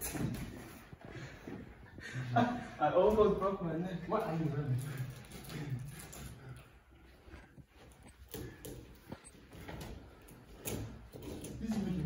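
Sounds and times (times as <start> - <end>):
feet shuffling: 0.0 - 12.0.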